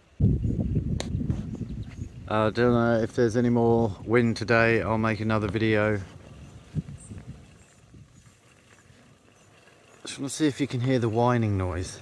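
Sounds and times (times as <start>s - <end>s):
faint low wind rumble: 0.0s - 10.0s.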